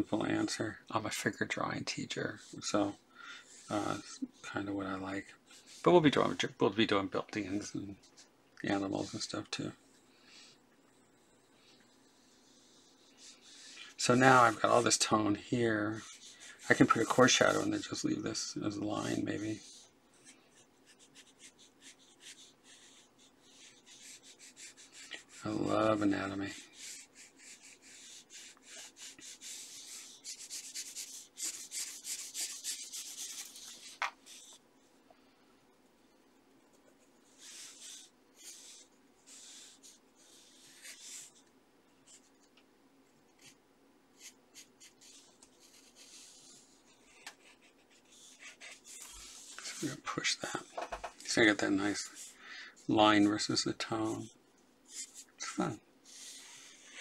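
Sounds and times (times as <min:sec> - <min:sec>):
pencil scratching on paper: 0:11.2 - 0:18.0, 0:18.7 - 0:34.6, 0:36.7 - 0:41.4, 0:43.3 - 0:43.6, 0:44.2 - 0:50.7, 0:51.3 - 0:55.3, 0:56.0 - 0:57.0.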